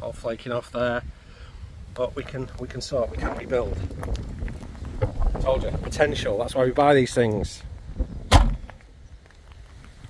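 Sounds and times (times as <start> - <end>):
car rear hatch slamming: 8.3 - 8.6.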